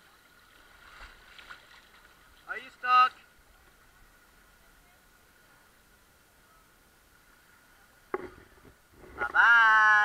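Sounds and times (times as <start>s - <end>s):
small water splashes: 0.0s - 4.6s
river water lapping: 0.0s - 9.3s.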